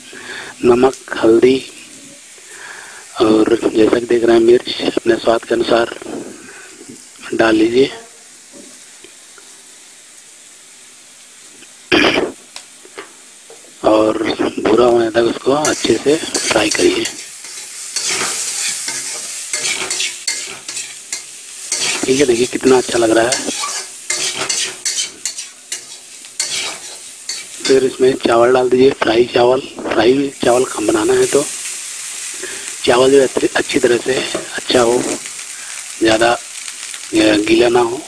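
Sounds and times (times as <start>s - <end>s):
vegetables sizzling in hot oil: 0.0s - 38.0s
spoon scraping a metal pan: 15.6s - 22.3s, 23.2s - 27.8s.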